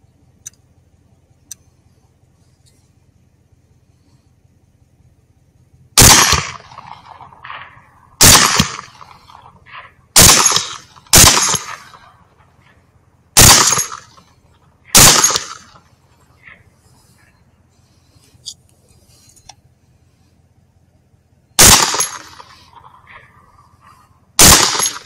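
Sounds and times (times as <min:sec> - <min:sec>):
rifle shots echoing: 0:06.0 - 0:12.8, 0:13.4 - 0:16.6, 0:21.6 - 0:25.0.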